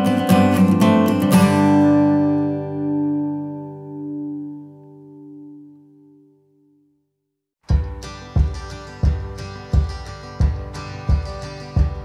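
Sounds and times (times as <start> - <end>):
acoustic guitar chord ringing: 0.0 - 7.1, 7.7 - 12.0.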